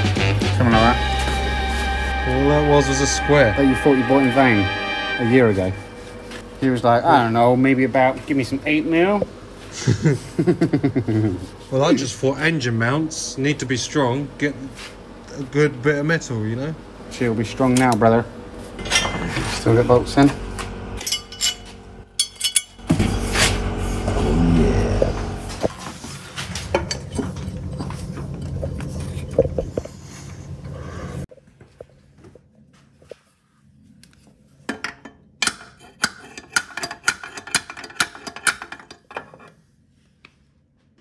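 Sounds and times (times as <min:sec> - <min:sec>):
steel parts clinking and knocking: 0:18.8 - 0:19.3, 0:21.0 - 0:22.8, 0:34.7 - 0:39.5.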